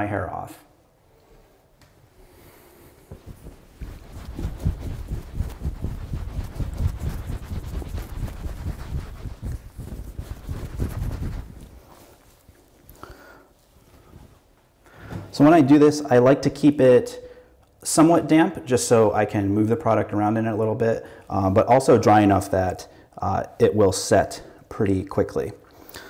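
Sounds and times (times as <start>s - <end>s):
towel rubbing damp hair: 2.4s - 13.0s.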